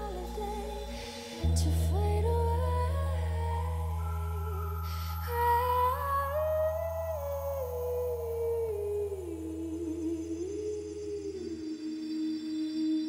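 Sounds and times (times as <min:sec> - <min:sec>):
low bass note: 0:00.0 - 0:09.6
woman singing wordless vocal: 0:00.0 - 0:13.0.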